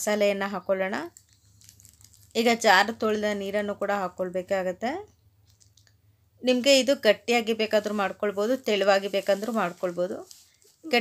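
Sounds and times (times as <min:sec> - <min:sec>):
person talking: 0:02.3 - 0:05.1, 0:06.4 - 0:11.0.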